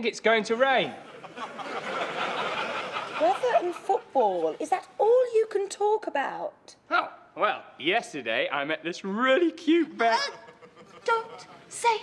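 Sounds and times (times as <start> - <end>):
studio audience laughing: 1.0 - 4.1, 10.0 - 12.0.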